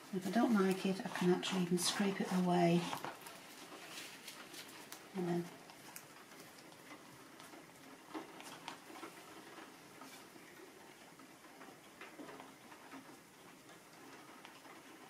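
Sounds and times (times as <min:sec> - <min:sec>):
plastic card scraping paint on paper: 0:00.3 - 0:03.2.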